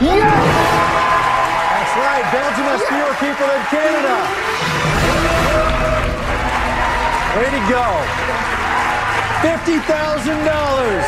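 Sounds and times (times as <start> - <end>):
audience applauding and cheering: 0.0 - 11.0
celebratory music: 0.0 - 11.0.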